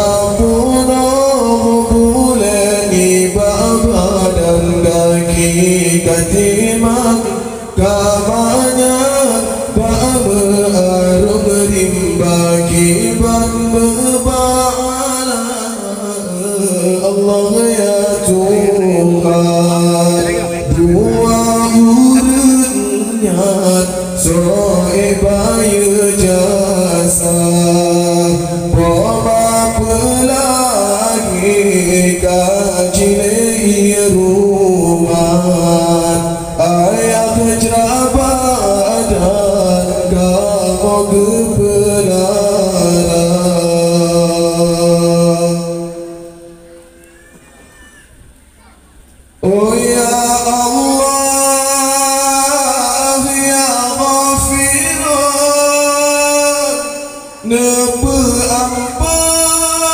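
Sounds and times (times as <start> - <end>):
man chanting into a microphone: 0.0 - 47.1, 48.6 - 59.9.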